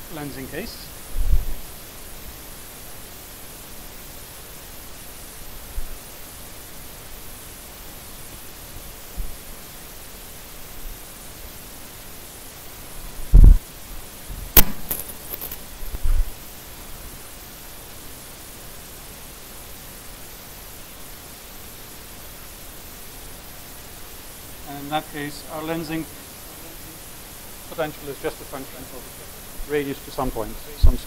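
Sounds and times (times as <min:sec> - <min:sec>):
room hiss: 0:00.0 - 0:31.0
low thumps: 0:13.3 - 0:13.6
sharp click: 0:14.6 - 0:15.6.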